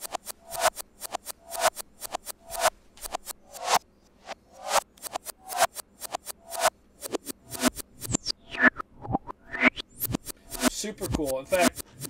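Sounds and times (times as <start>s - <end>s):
short clicks: 0.0s - 3.8s, 4.7s - 8.3s
reversed drum beat: 0.0s - 12.0s.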